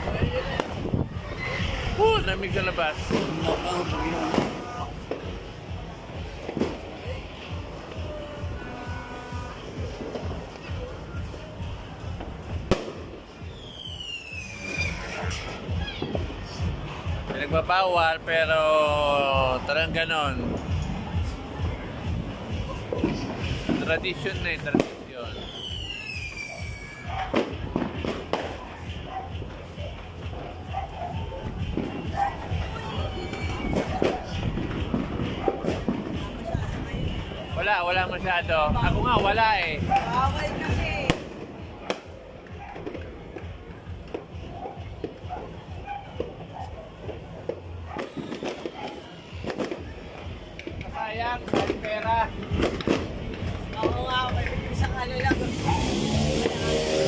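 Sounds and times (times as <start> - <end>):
firecracker bang: 0.1 - 10.8, 12.1 - 17.6, 20.4 - 30.5, 31.1 - 57.0
background music with steady beat: 1.9 - 48.6, 49.3 - 57.0
descending whistle: 13.5 - 15.3, 25.2 - 27.1.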